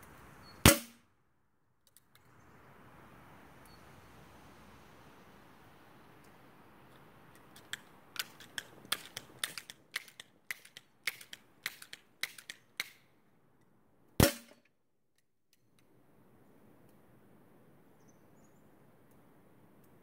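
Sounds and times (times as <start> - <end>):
pellet gun shot: 0.7 - 1.0, 14.2 - 14.6
pellet striking metal box: 0.7 - 1.0, 14.2 - 14.6
light sharp clicks: 6.2 - 13.0.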